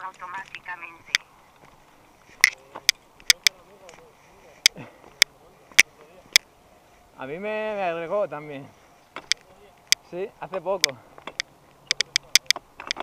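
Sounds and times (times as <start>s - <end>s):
bike clicks and knocks: 2.4s - 4.0s, 9.2s - 13.0s.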